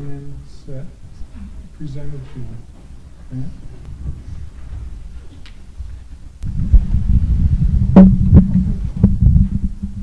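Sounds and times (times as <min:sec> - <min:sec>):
microphone handling rumble: 0:03.3 - 0:10.0
knocks on microphone: 0:07.8 - 0:10.0.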